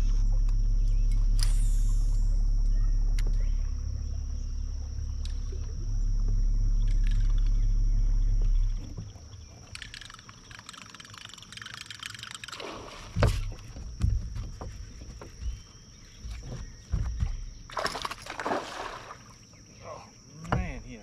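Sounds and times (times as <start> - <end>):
loud low rumble: 0.0 - 9.4
faint crackling splashy sounds: 17.7 - 19.5.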